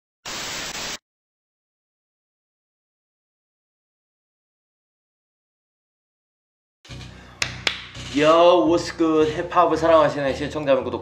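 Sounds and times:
tv static glitch burst: 0:00.2 - 0:01.0.

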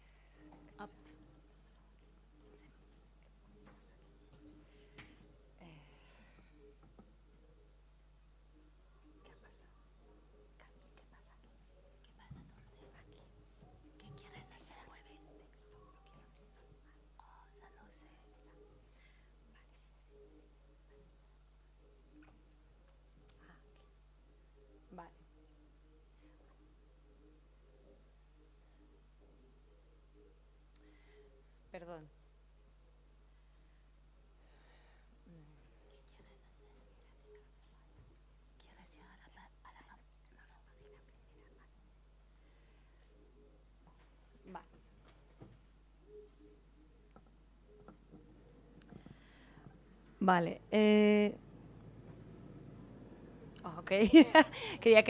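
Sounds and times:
faint electrical hum: 0:00.0 - 0:55.0
thin high whine: 0:00.0 - 0:55.0
people whispering: 0:10.4 - 0:20.5, 0:38.6 - 0:41.6.

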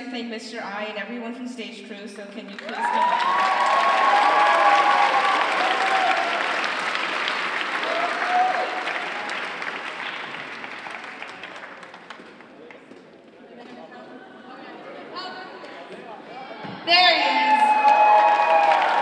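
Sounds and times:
audience applauding: 0:02.5 - 0:13.0, 0:17.4 - 0:19.0.

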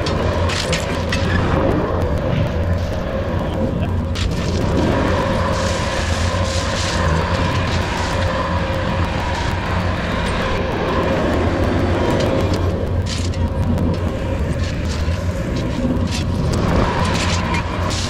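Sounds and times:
diesel engine running: 0:00.0 - 0:18.0
gravelly scrapes: 0:00.0 - 0:18.0.

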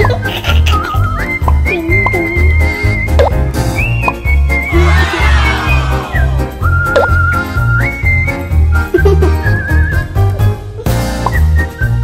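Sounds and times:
whistled melody: 0:00.0 - 0:10.4, 0:11.0 - 0:12.0.

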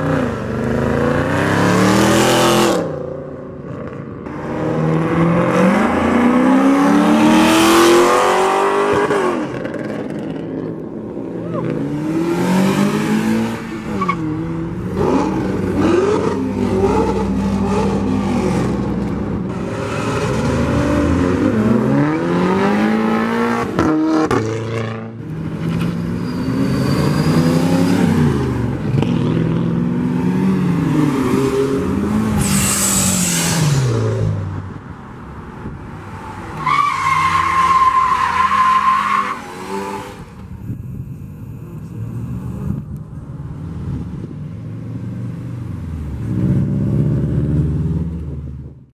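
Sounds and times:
car engines revving: 0:00.0 - 0:48.8
high-pitched squeal: 0:25.8 - 0:27.7, 0:32.4 - 0:33.8.

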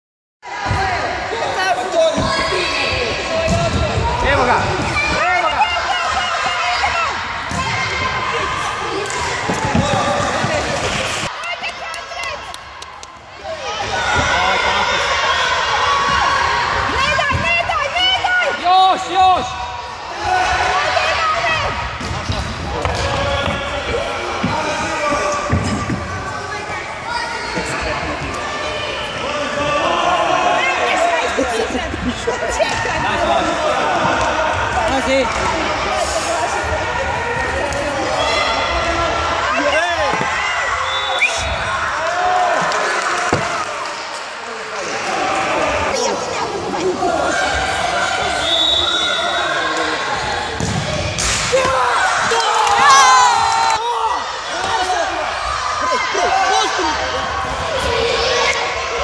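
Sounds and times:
people shouting: 0:51.2 - 0:59.0.

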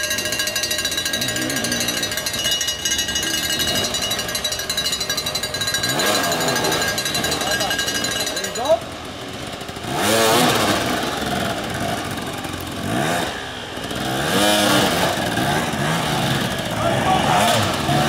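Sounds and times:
dirt bike engines revving: 0:00.0 - 0:18.0.

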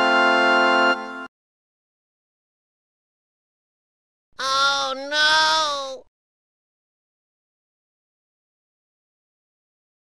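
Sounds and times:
cat meowing: 0:04.4 - 0:06.0.

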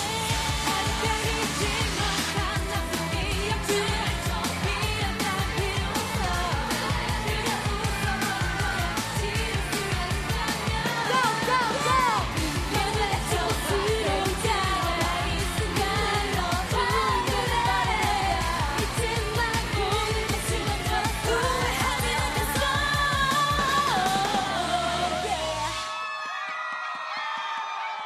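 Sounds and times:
female singing over dance beat: 0:00.0 - 0:25.8.

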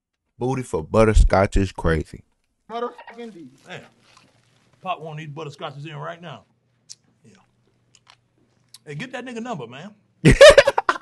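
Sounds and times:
mouth sounds eating hard candy: 0:06.8 - 0:08.9.

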